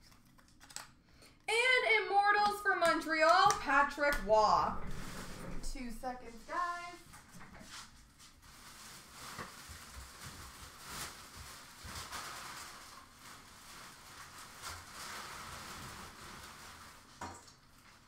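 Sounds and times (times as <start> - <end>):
faint rustling and handling: 4.6 - 18.0.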